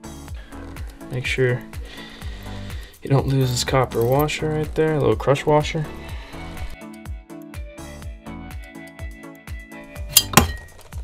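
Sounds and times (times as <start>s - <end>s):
background music with beat: 0.0s - 5.0s, 5.6s - 11.0s
metal engine parts clinking: 3.4s - 4.4s, 10.0s - 11.0s.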